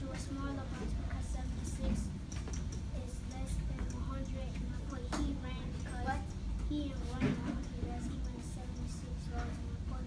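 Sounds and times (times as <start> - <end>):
low hum of room noise: 0.0 - 10.0.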